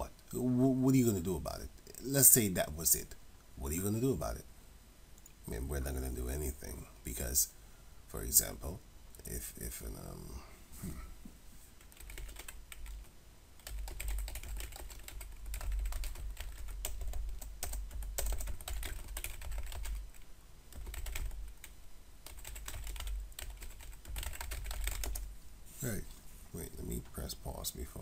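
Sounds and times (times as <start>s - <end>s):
typing on computer keyboard: 11.9s - 25.3s.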